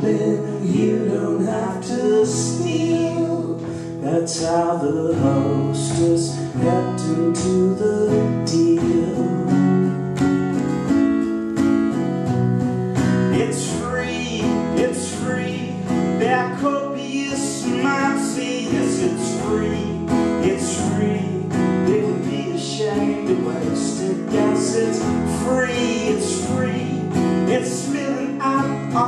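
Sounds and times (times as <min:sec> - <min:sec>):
guitar picking lead line: 0:00.0 - 0:29.0
guitar strumming chords: 0:00.0 - 0:29.0.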